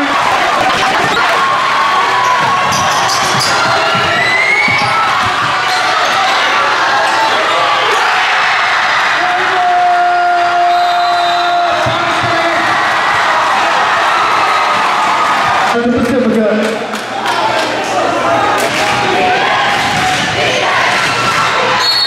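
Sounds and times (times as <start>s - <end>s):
crowd cheering and shouting: 0.0s - 22.0s
basketball bouncing on court: 2.4s - 6.3s.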